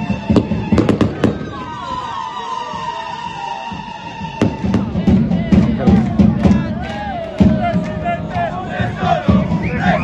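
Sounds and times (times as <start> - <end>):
fireworks bangs: 0.0 - 1.7
music with steady beat: 3.6 - 10.0.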